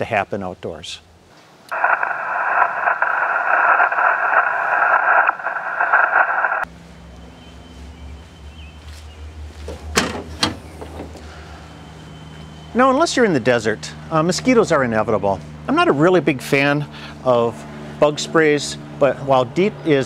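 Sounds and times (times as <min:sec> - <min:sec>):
low steady hum: 0:01.0 - 0:09.6
radio static hiss: 0:01.7 - 0:06.7.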